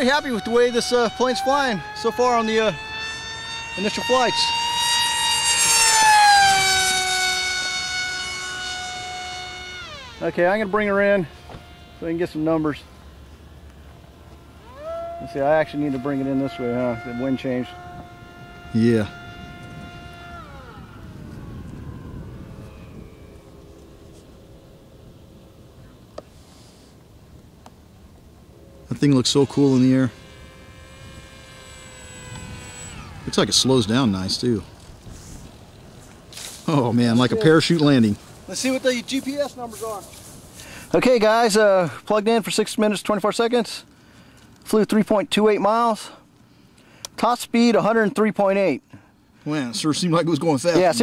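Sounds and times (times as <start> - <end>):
electric motor whine: 0.0 - 41.7, 49.3 - 51.0.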